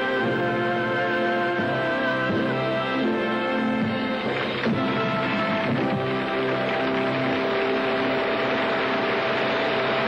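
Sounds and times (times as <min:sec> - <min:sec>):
audience applauding: 0:04.0 - 0:10.0.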